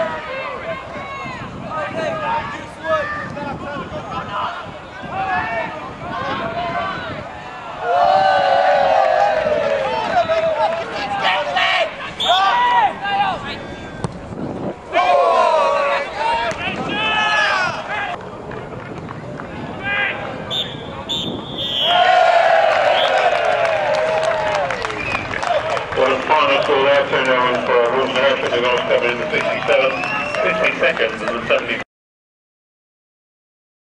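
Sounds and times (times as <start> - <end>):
players and spectators shouting: 0.0 - 14.0, 14.8 - 18.2, 19.8 - 26.9.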